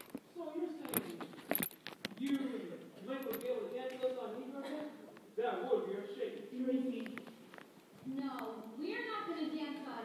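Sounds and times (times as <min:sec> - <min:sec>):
metallic clinks: 0:00.8 - 0:02.4, 0:03.1 - 0:04.2.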